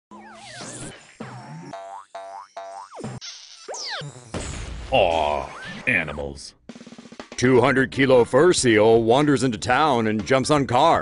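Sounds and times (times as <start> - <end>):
springy cartoon boings: 0.1 - 4.8.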